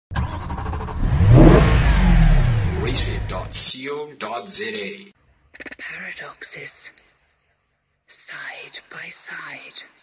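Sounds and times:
vehicle engine revving: 0:00.1 - 0:03.6.

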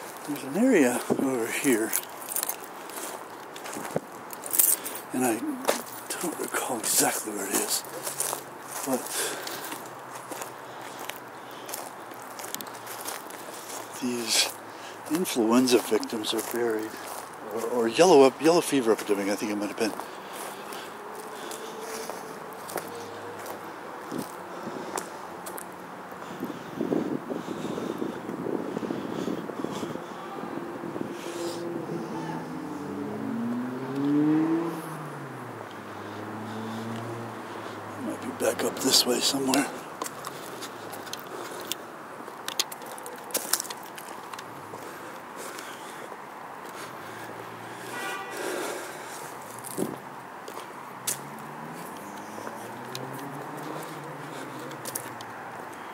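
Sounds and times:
footsteps on grass and sand: 0:00.0 - 0:31.3, 0:32.4 - 0:55.9
soft scuffs and clicks: 0:35.7 - 0:55.8
camera handling clicks and rustle: 0:41.0 - 0:44.5.

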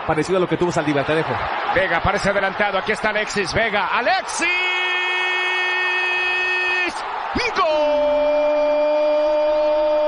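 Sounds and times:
stadium crowd noise: 0:00.0 - 0:10.0
commentator's long held shout: 0:04.0 - 0:10.0.

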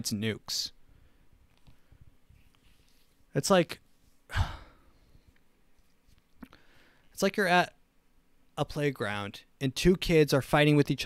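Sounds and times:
man sighing: 0:04.3 - 0:05.2.

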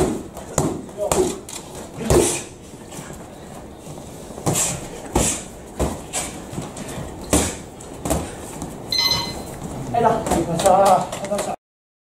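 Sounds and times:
short ringing tone: 0:08.9 - 0:09.6.

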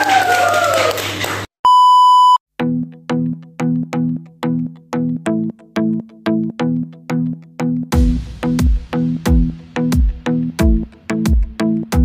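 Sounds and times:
high test-tone beep: 0:01.6 - 0:02.4
music with repeated chord: 0:02.6 - 0:12.0.

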